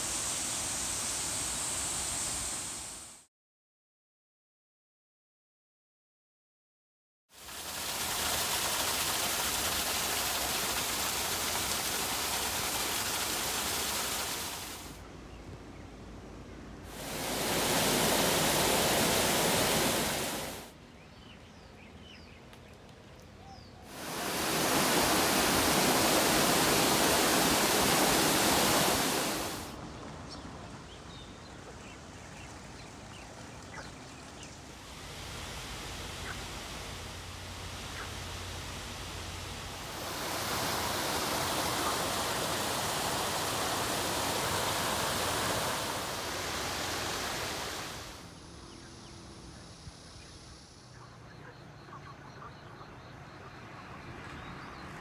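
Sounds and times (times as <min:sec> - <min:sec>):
water rushing down a spillway: 0:07.3 - 0:15.0, 0:16.9 - 0:20.7, 0:23.9 - 0:29.8, 0:31.7 - 0:48.3
faint bird chirps: 0:23.2 - 0:23.9, 0:48.4 - 0:55.0.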